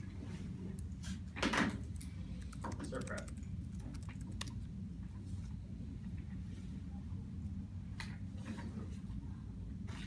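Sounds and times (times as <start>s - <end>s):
low room hum: 0.0s - 10.0s
laptop keyboard typing: 1.8s - 4.7s.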